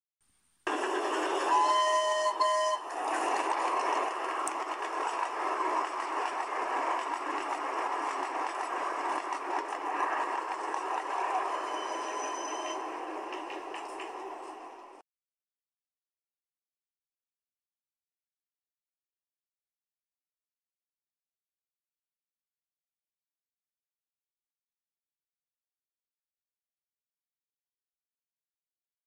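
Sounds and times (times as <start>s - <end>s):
steam locomotive whistle: 0.7s - 3.2s, 11.4s - 13.0s
locomotive rushing and rattling: 0.7s - 15.0s.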